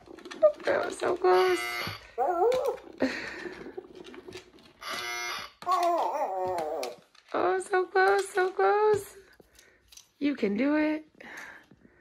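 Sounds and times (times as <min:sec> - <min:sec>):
recorded dog whimpers and howls: 0:02.1 - 0:03.0, 0:05.6 - 0:07.1.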